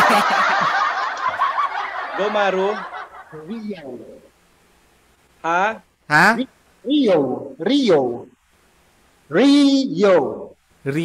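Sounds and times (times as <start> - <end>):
men laughing: 0.0 - 4.2.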